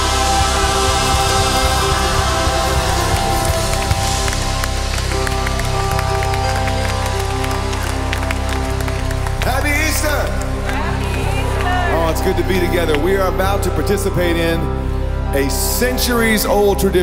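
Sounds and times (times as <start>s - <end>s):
scattered clapping: 0.0s - 14.0s
band holding sustained chord: 0.0s - 17.0s.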